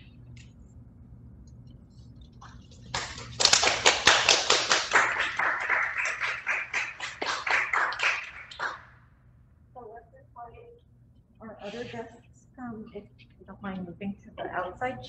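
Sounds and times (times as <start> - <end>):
clapping hands: 2.5 - 8.9.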